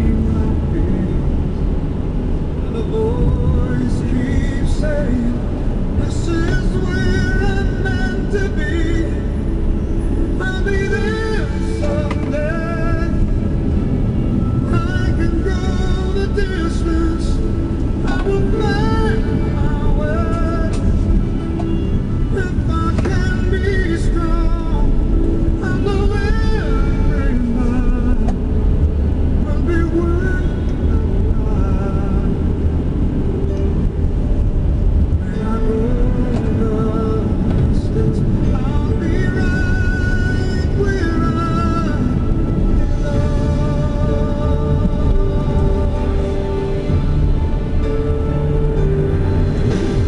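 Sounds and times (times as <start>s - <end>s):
car road and engine noise: 0.0s - 50.0s
music with singing: 0.0s - 50.0s.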